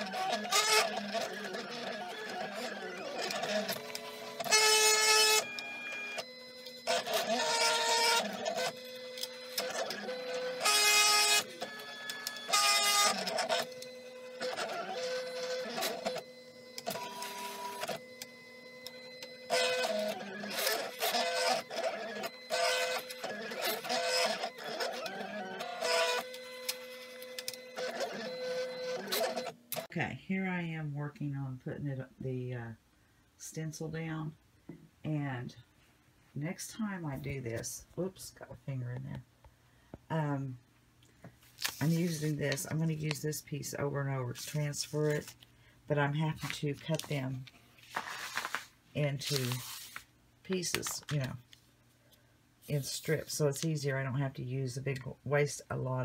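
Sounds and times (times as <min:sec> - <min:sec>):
cutting plotter motors whining: 0:00.0 - 0:29.9.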